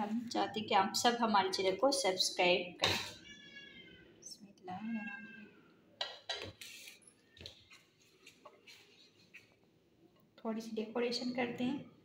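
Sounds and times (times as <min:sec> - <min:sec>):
cat meowing: 0:03.1 - 0:04.2.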